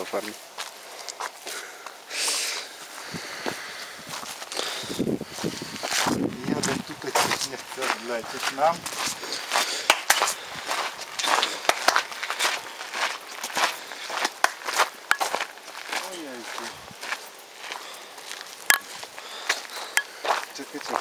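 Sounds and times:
footsteps on gravel: 0.0s - 1.6s, 2.8s - 21.0s.

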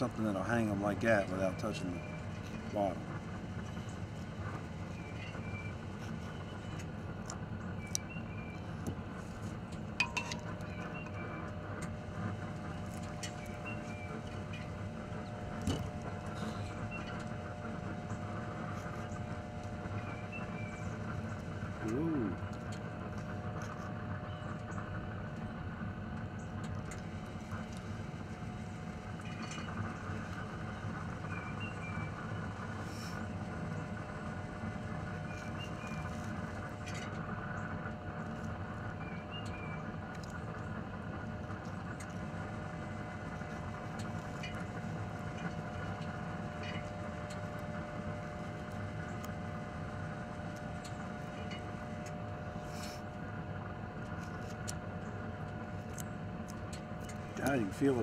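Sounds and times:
mechanical hum with droning tones: 0.0s - 58.0s.

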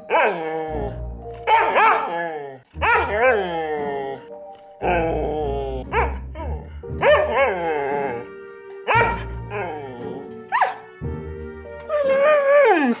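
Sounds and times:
dog howling: 0.0s - 8.3s, 8.9s - 10.8s, 11.9s - 13.0s
background music: 0.0s - 13.0s
dog yipping: 1.5s - 2.1s, 10.5s - 10.9s.

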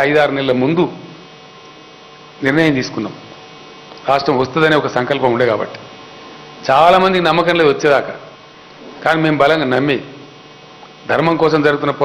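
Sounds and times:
man speaking into a microphone: 0.0s - 1.2s, 2.4s - 3.3s, 4.0s - 5.9s, 6.6s - 10.3s, 11.0s - 12.0s
electrical mains hum: 0.0s - 12.0s.

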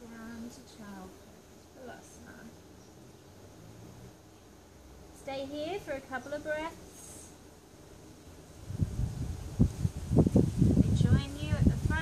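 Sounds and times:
wind gusting across microphone: 8.1s - 12.0s.

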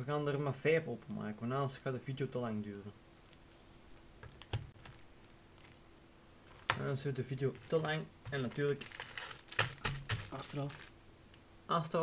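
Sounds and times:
faint steady hum: 0.0s - 12.0s
foil packs crinkling: 4.8s - 5.8s, 6.4s - 11.0s.

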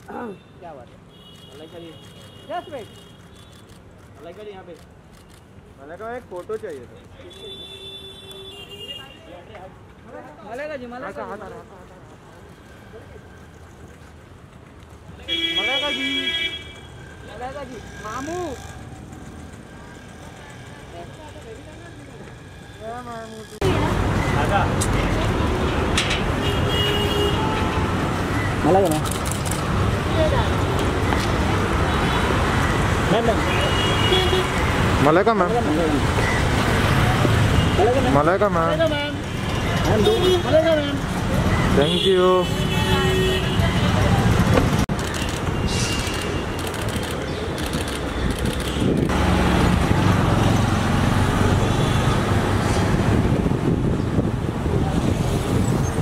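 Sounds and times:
low rumble of cars: 9.4s - 56.0s.

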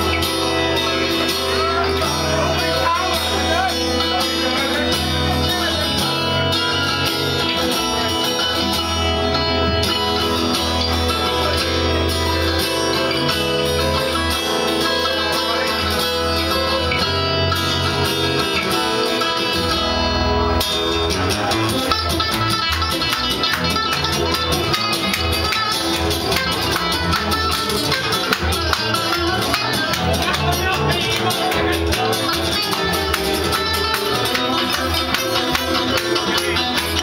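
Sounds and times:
acoustic guitars strumming: 0.0s - 37.0s
upright double bass: 0.0s - 37.0s.

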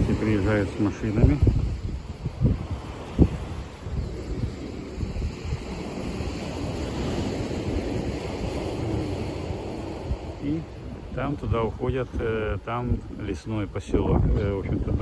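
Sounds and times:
surf on a beach: 0.0s - 15.0s
wind buffeting microphone: 0.0s - 15.0s.

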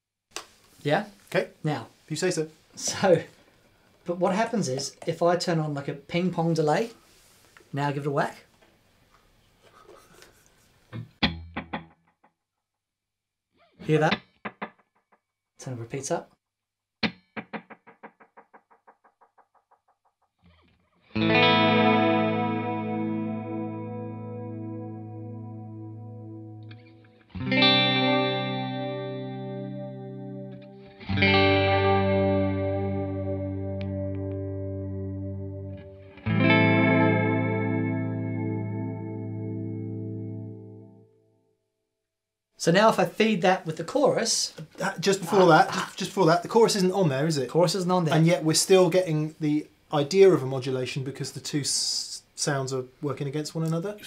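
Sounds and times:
electric guitar with delay echoes: 21.1s - 40.9s.

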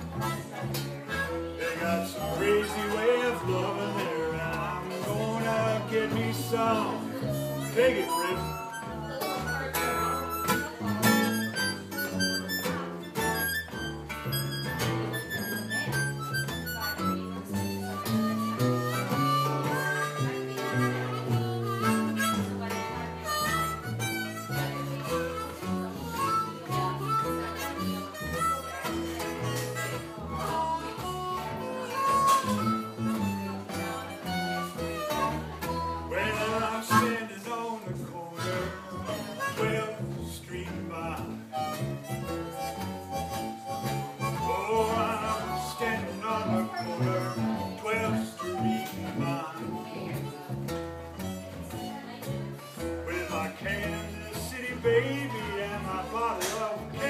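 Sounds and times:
blues harmonica solo: 0.0s - 37.4s, 38.2s - 57.0s
strummed guitar: 0.0s - 57.0s.

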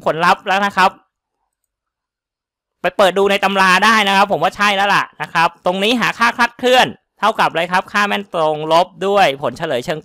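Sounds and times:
man narrating: 0.0s - 1.1s, 2.8s - 10.0s.

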